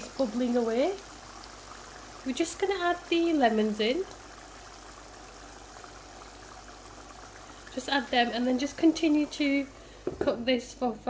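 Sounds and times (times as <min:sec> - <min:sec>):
sauce simmering in frying pan: 0:00.0 - 0:10.2.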